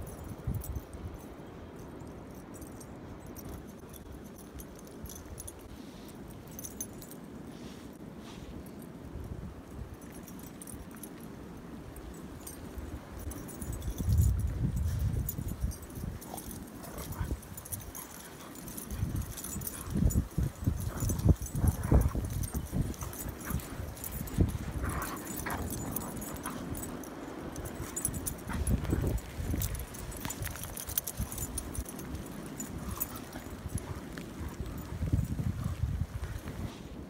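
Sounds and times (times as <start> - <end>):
wind buffeting microphone: 0.0 - 2.1, 11.8 - 37.0
dogs scuffling in snow: 3.3 - 37.0.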